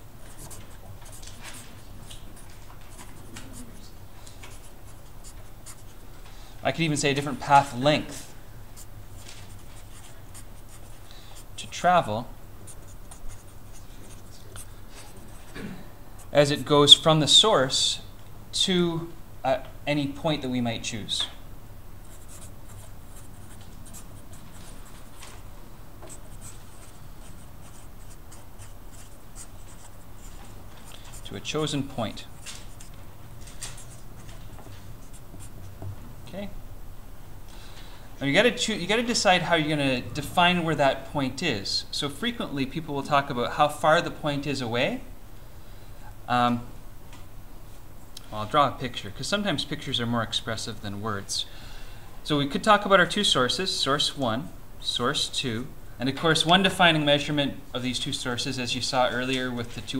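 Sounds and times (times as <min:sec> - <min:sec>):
low steady hum: 0:00.0 - 0:59.9
marker writing on paper: 0:00.3 - 0:03.9, 0:04.5 - 0:06.0, 0:09.2 - 0:11.5, 0:12.7 - 0:15.6, 0:22.1 - 0:25.4, 0:26.0 - 0:31.3.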